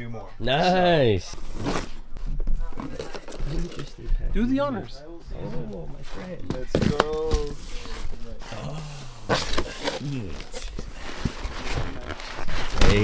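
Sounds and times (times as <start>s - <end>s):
plastic bag rustling: 9.3s - 13.0s.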